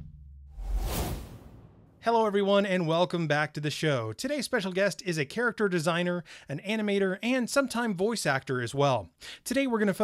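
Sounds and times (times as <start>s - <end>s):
whoosh with low rumble: 0.5s - 2.0s.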